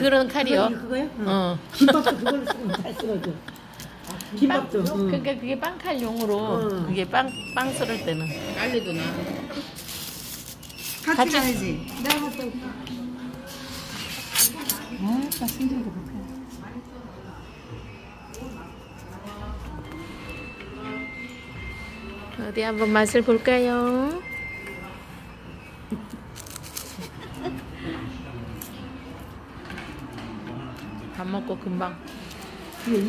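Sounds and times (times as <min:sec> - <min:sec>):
low background voices: 0:24.2 - 0:33.0
crisp pastry being torn and eaten: 0:26.1 - 0:27.1.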